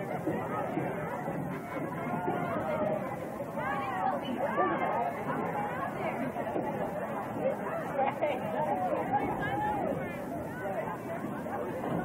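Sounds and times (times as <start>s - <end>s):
indistinct chatter of people: 0.0s - 12.0s.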